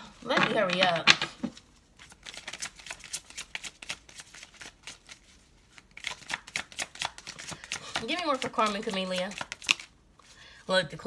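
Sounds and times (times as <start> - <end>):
cards being shuffled: 0.2 - 10.0.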